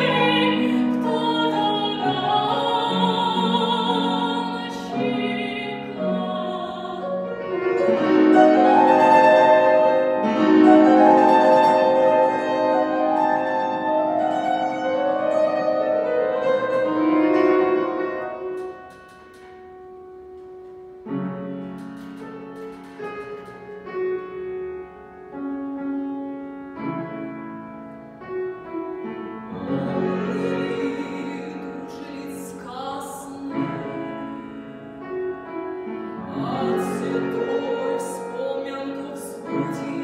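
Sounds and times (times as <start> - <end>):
grand piano: 0.0 - 40.0.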